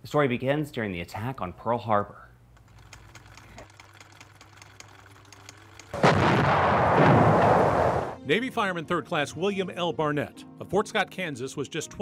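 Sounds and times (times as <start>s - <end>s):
explosions: 6.0s - 8.2s
gunfire: 6.0s - 8.2s.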